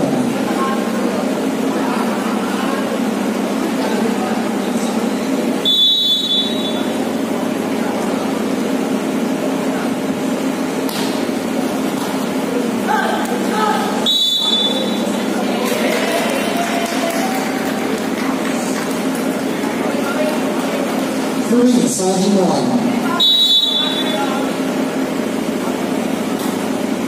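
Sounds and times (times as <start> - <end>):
murmur of voices: 0.0 - 27.0
referee's whistle blast: 5.6 - 6.9, 14.0 - 15.1, 23.2 - 24.3.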